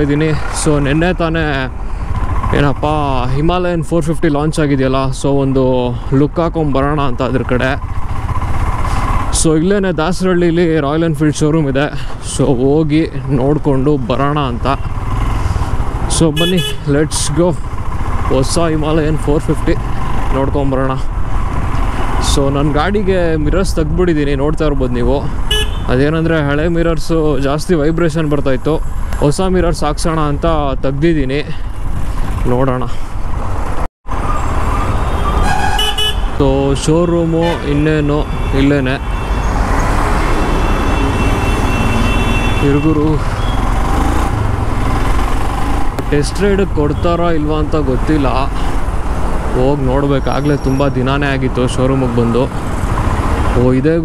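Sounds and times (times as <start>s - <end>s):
man talking: 0.0s - 1.8s, 2.5s - 7.8s, 9.3s - 14.9s, 16.1s - 17.6s, 18.3s - 21.1s, 22.2s - 31.7s, 32.4s - 33.0s, 36.4s - 39.1s, 42.6s - 43.4s, 46.1s - 48.7s, 49.5s - 52.6s, 53.5s - 54.0s
road noise: 0.0s - 54.0s
motorcycle engine running: 7.1s - 9.9s, 14.0s - 24.0s.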